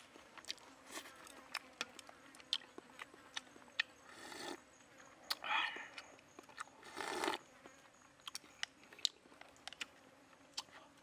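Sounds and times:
chewing clicks and smacks: 0:00.4 - 0:04.0, 0:05.2 - 0:07.3, 0:08.2 - 0:10.8
person slurping soup: 0:04.1 - 0:04.6, 0:06.8 - 0:07.4.

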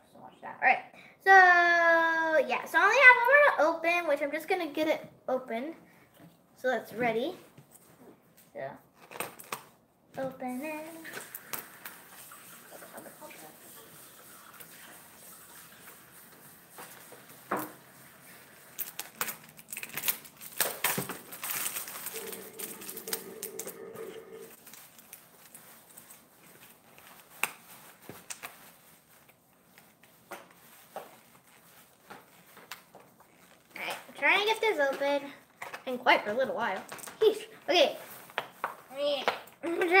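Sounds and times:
plastic packaging crinkling: 0:18.2 - 0:23.9, 0:24.5 - 0:33.8.

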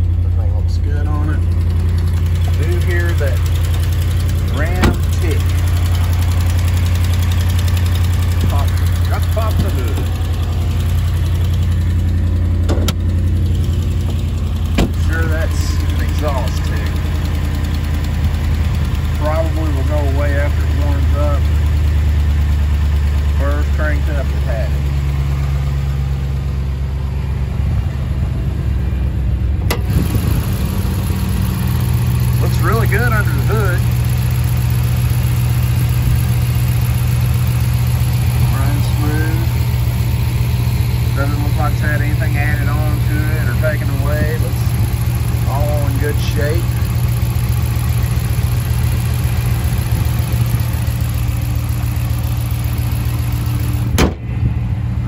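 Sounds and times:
truck engine idling: 0:00.0 - 0:55.0
sharp knocks: 0:14.7 - 0:15.0, 0:53.9 - 0:54.3.

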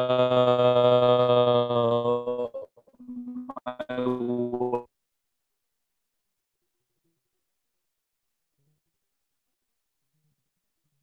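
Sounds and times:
garbled video call voice: 0:00.0 - 0:04.9.

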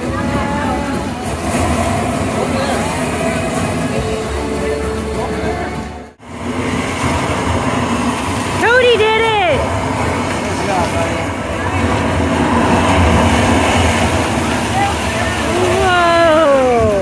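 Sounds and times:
water jetting and splashing: 0:00.0 - 0:17.0.

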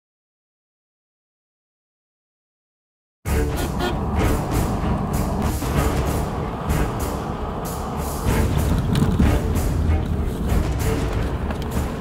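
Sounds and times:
road and engine rumble: 0:03.3 - 0:12.0.

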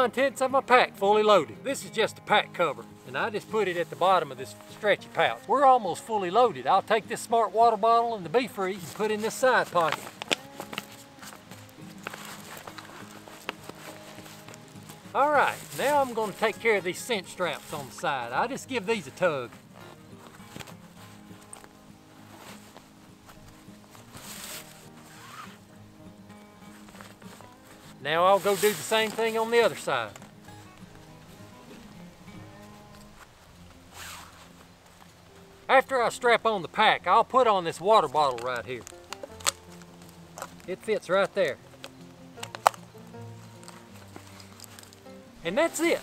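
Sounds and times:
quiet background music: 0:00.0 - 0:46.0
webbing rustling through buckles: 0:00.0 - 0:46.0.

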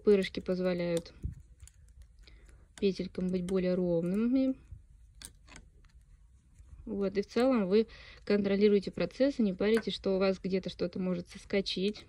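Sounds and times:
metal knitting needles clicking: 0:00.0 - 0:06.1, 0:07.1 - 0:07.8, 0:08.6 - 0:12.0.

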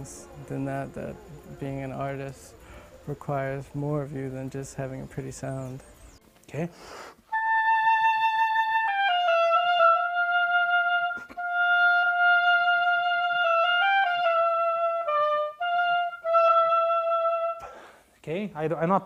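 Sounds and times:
woodwind instrument melody: 0:07.3 - 0:17.8.

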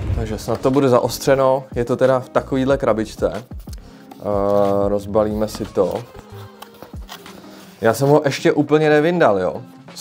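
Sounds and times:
man speaking: 0:00.0 - 0:03.2.

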